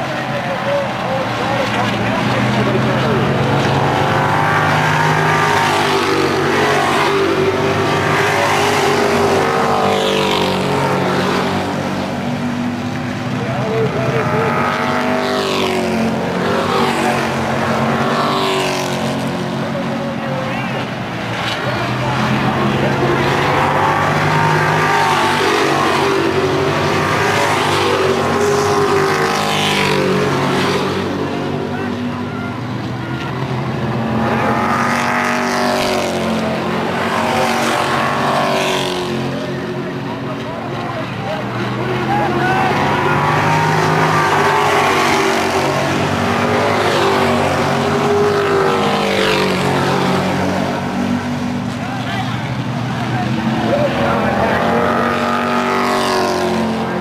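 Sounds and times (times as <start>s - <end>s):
stock cars racing past: 0.0s - 57.0s.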